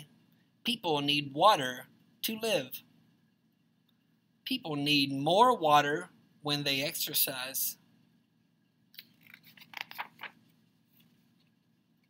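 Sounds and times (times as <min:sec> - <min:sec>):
paper page turning: 0:09.0 - 0:11.6.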